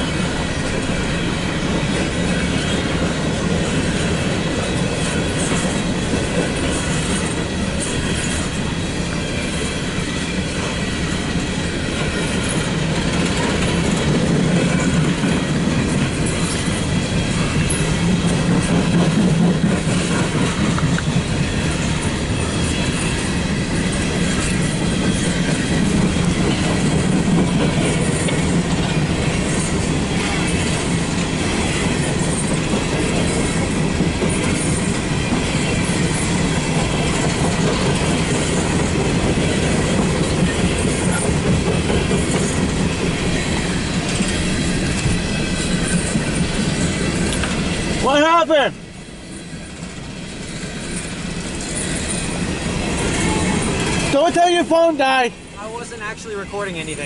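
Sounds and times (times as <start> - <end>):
freight train rumbling: 0.0 - 57.0
wheels clattering on rails: 0.0 - 57.0.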